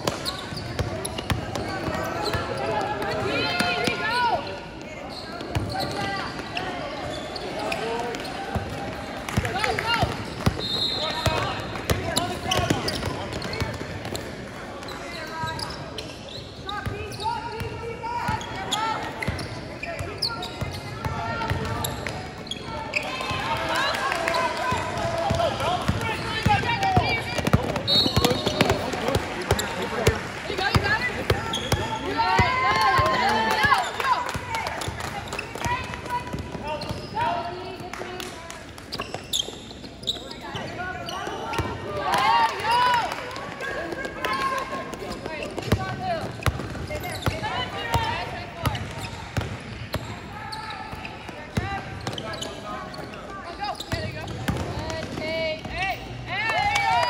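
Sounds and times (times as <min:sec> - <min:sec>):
basketball dribbling: 0:25.3 - 0:34.9, 0:45.0 - 0:49.6.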